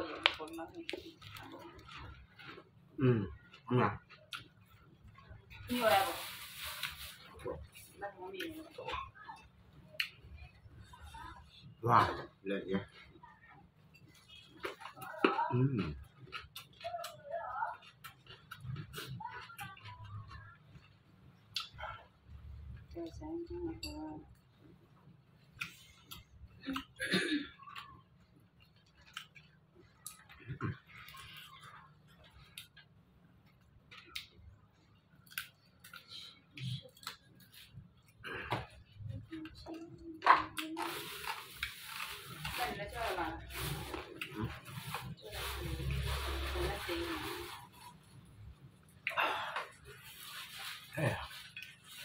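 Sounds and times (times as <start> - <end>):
mouth clicks and chewing: 15.8 - 21.8, 27.6 - 38.2.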